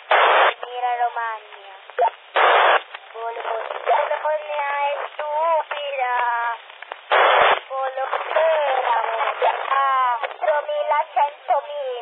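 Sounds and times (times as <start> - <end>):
voice over walkie-talkie: 0.1 - 5.1, 7.1 - 12.0.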